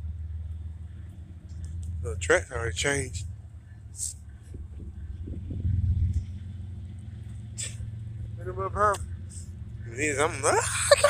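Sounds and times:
low vehicle rumble: 0:00.0 - 0:11.0.

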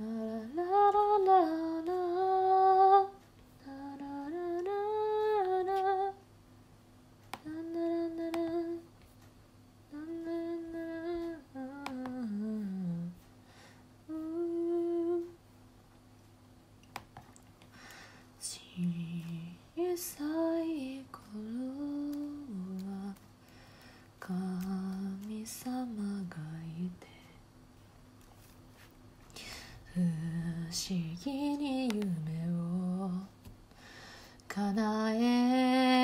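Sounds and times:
woman singing softly: 0:00.0 - 0:06.4, 0:07.2 - 0:13.4, 0:14.0 - 0:15.6, 0:18.4 - 0:27.5, 0:29.4 - 0:33.6, 0:34.4 - 0:36.0
woman humming: 0:14.1 - 0:15.4.

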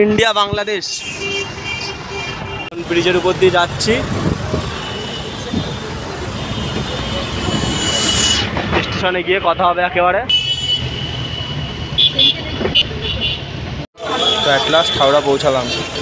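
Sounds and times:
vehicle horns: 0:00.6 - 0:08.5, 0:10.3 - 0:16.0
engine and tyre noise: 0:01.4 - 0:09.4.

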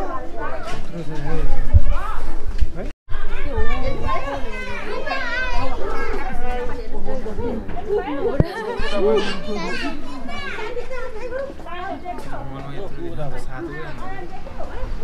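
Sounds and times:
children chattering and calling out: 0:00.0 - 0:15.0.

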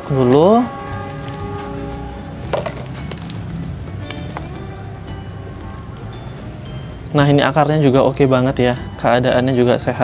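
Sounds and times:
soil crumbling and rustling: 0:02.4 - 0:04.7.

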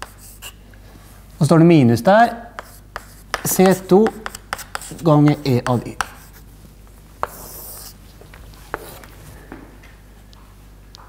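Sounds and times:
chalk scratching on chalkboard: 0:00.0 - 0:00.6, 0:02.6 - 0:06.4, 0:07.2 - 0:08.0, 0:08.7 - 0:09.1
chalk tapping on chalkboard: 0:00.0 - 0:00.6, 0:02.6 - 0:06.4, 0:07.2 - 0:08.0.

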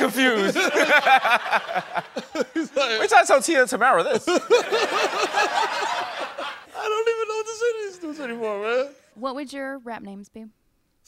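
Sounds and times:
man laughing: 0:00.0 - 0:03.3, 0:04.0 - 0:08.9.

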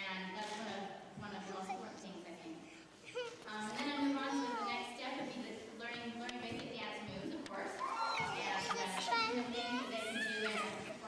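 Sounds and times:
children chattering and calling out: 0:01.4 - 0:05.0, 0:07.6 - 0:11.0.

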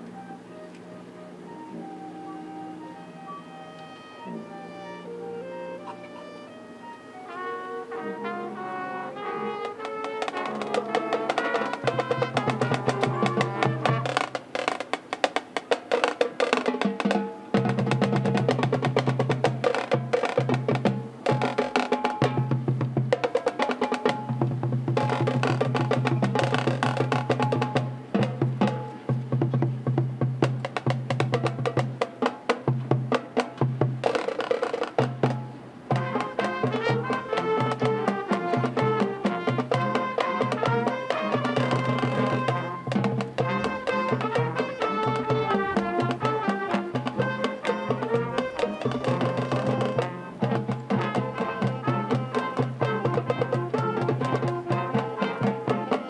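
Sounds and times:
marching band playing: 0:00.0 - 0:56.0
fast rhythmic percussion: 0:07.4 - 0:56.0.

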